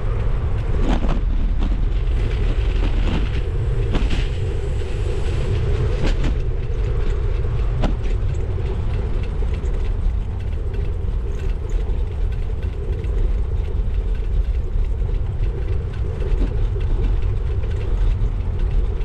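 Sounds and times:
bicycle tyres rolling on pavement: 0.0s - 19.0s
wind buffeting microphone: 0.0s - 19.0s.

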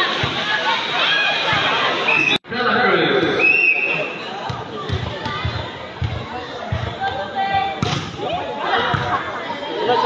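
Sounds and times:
spectators' voices: 0.0s - 10.0s
volleyball sharp hit: 7.8s - 8.3s.

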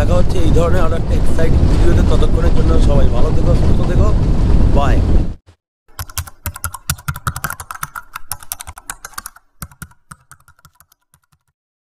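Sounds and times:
keyboard typing: 5.9s - 11.6s.

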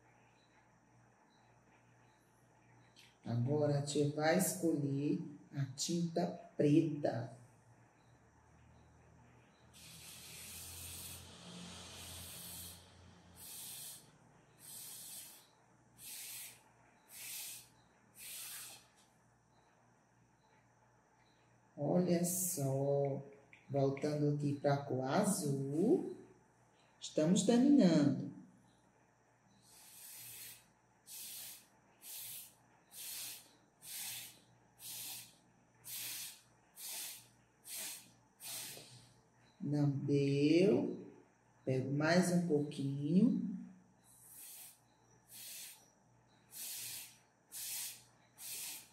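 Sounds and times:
breath puffs through a straw: 9.8s - 19.1s, 29.6s - 39.2s, 44.1s - 45.9s, 46.5s - 48.9s.

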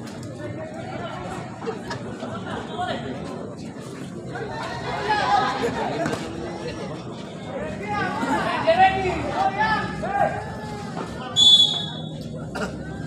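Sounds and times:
spectators chattering: 0.0s - 13.0s.

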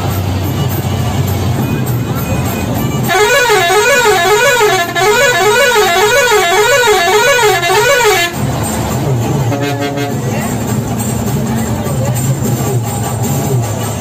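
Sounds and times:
warbling bus horn: 0.5s - 11.2s
steady horn note: 3.1s - 8.4s, 9.5s - 10.3s.

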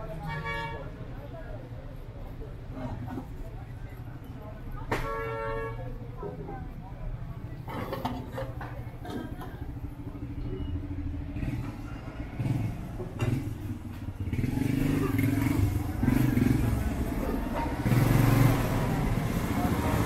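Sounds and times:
street traffic: 0.0s - 20.0s
vehicle engine running close: 7.4s - 20.0s.

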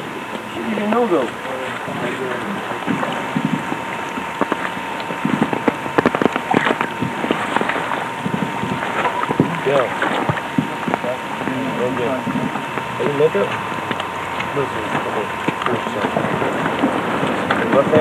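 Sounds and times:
faint steady whine: 0.0s - 18.0s.

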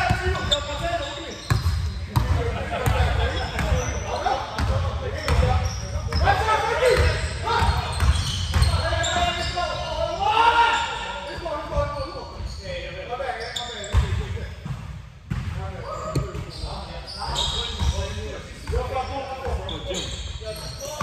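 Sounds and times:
players calling out: 0.0s - 12.6s.

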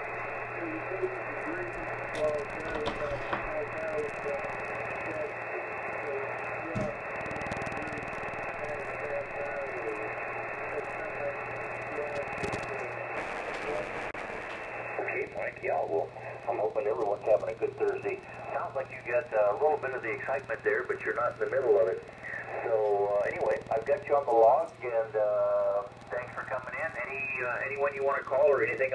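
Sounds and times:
radio band noise: 0.0s - 28.9s
faint radio voice: 0.4s - 28.9s.

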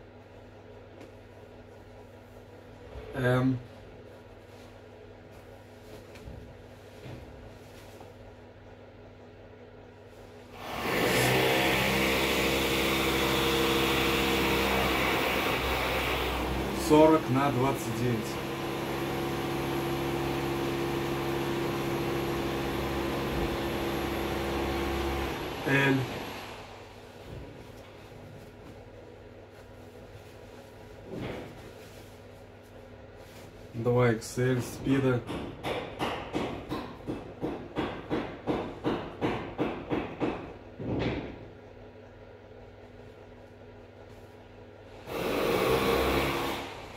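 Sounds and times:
low machine hum: 0.0s - 39.4s, 40.3s - 46.9s.

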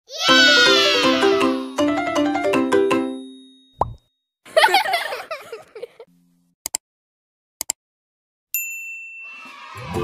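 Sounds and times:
rising pop sound effect: 3.8s - 4.0s.

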